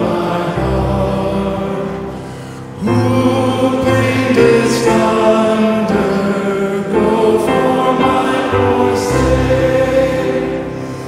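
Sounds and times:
group singing a hymn: 0.0 - 11.0.

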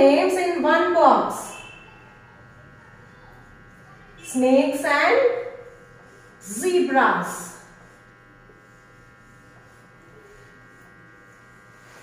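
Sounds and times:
faint electrical buzz: 0.0 - 12.0.

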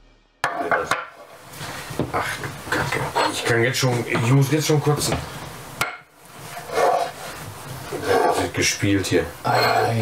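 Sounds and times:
intro music: 0.0 - 0.5.

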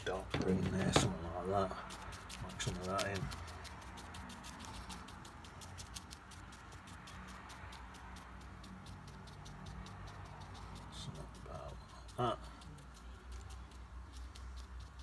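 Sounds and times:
brush tapping on paper: 0.0 - 15.0.

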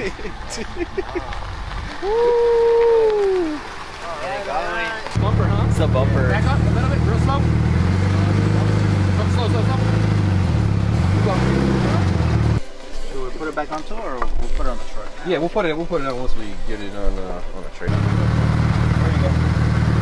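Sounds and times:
car engine idling: 5.2 - 12.6, 17.9 - 20.0.

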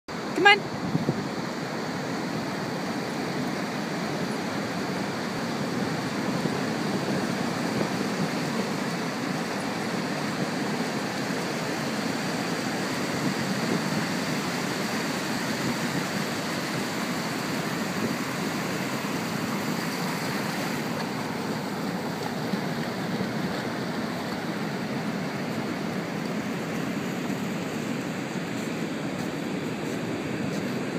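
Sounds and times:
ocean surf breaking on beach: 0.1 - 30.9.

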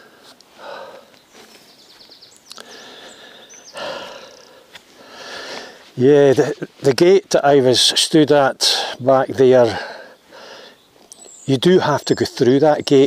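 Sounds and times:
man breathing and sniffing: 0.0 - 1.9, 2.5 - 6.0, 9.7 - 10.8.

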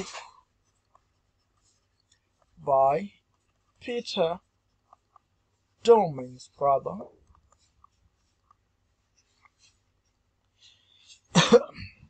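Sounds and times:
man coughing: 11.3 - 12.0.

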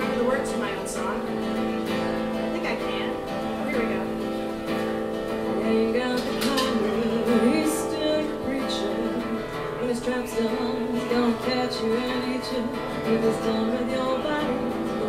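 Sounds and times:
acoustic guitar strumming: 0.0 - 15.0
person singing: 5.4 - 15.0.

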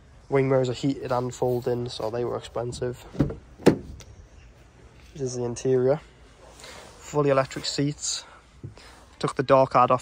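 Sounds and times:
car door latch clunk: 2.7 - 4.0.

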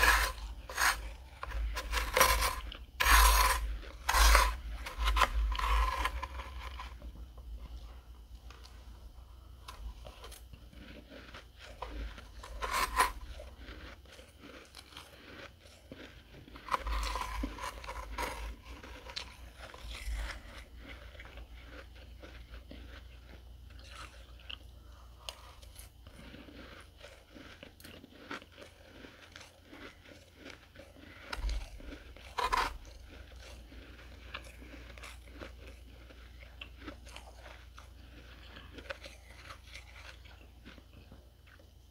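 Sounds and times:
chewing crunchy frost: 0.0 - 41.9.

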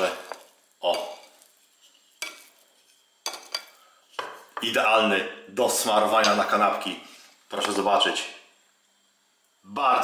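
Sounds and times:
cutlery scraping on porcelain plate: 1.0 - 4.6.

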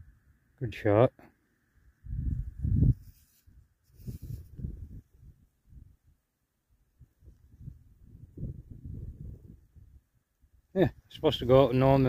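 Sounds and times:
wind buffeting microphone: 2.0 - 3.2, 4.0 - 6.0, 7.0 - 10.1.

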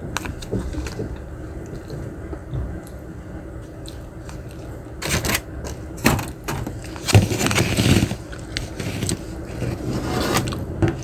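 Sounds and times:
plastic spoon scraping container: 7.0 - 10.6.

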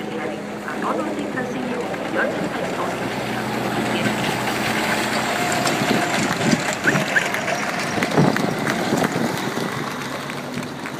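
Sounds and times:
steady rushing outdoor noise: 0.0 - 10.9.

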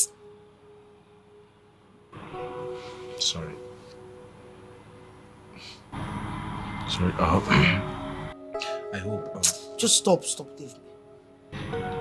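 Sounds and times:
faint held music tone: 0.0 - 5.9.

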